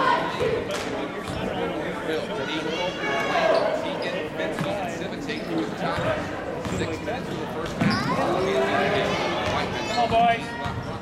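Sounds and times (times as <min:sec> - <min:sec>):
crowd talking: 0:00.0 - 0:11.0.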